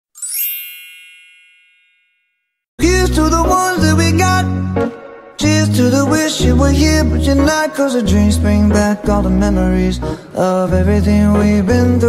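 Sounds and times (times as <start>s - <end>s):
bright chime sound effect: 0.2s - 2.6s.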